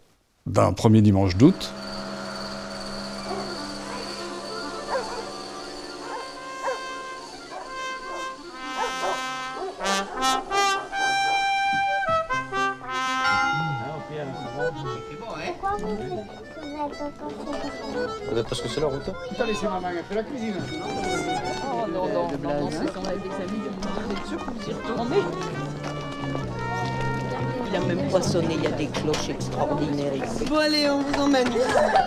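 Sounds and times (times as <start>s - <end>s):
brass film music: 0.8s - 30.3s.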